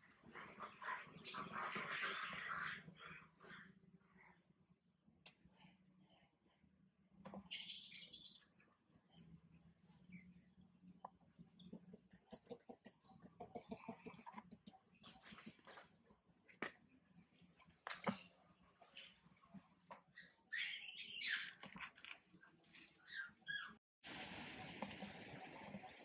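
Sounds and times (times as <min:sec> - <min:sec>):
baby monkey squeaking: 0:20.2 - 0:21.5.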